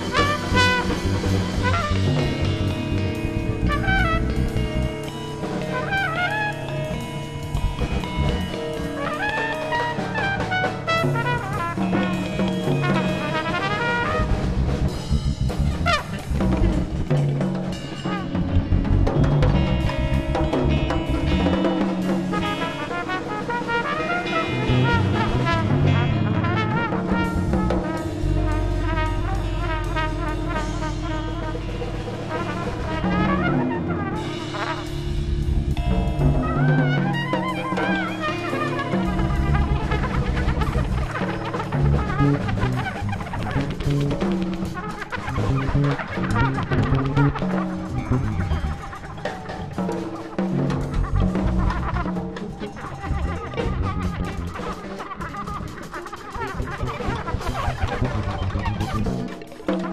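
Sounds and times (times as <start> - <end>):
electric bass: 0.0 - 49.8, 50.6 - 55.7, 56.5 - 59.3
drum kit with timbales: 0.0 - 59.9
electric guitar: 0.0 - 59.9
trumpet playing bending lines: 0.0 - 59.9.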